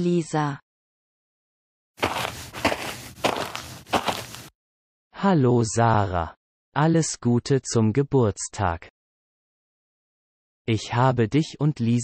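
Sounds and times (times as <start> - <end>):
high heel footsteps: 2.0 - 4.5.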